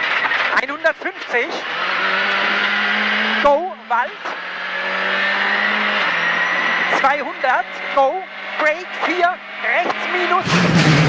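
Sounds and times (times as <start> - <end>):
tyres on loose gravel track: 0.0 - 2.1, 6.0 - 11.0
rally car engine high-revving: 0.0 - 11.0.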